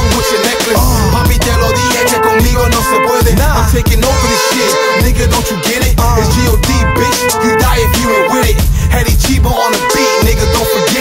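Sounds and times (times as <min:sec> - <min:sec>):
hip hop beat: 0:00.0 - 0:11.0
deep bass hits: 0:00.8 - 0:04.4, 0:05.0 - 0:09.5.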